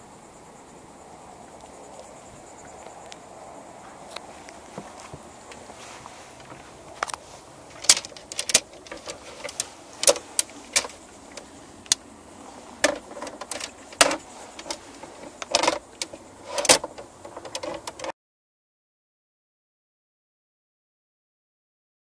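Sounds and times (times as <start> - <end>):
rods clicking and clattering: 6.4 - 12.0, 12.6 - 18.1.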